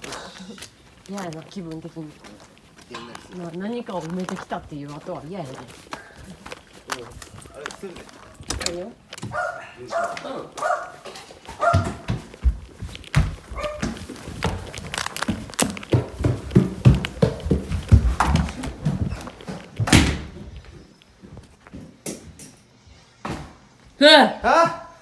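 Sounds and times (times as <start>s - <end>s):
footsteps on wooden floor: 0.0s - 24.0s.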